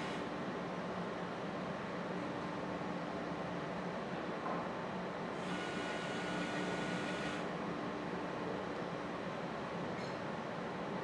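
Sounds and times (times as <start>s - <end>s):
small motor whining: 5.4s - 7.4s.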